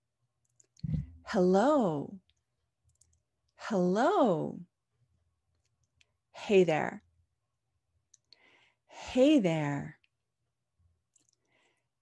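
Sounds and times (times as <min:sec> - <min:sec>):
person speaking: 0:00.8 - 0:01.7.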